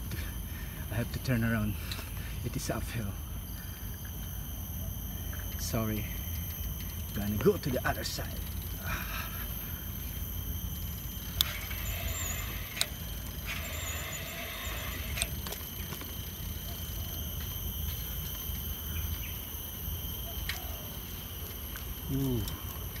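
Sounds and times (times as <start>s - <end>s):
bicycle tyre rumble: 8.3s - 23.0s.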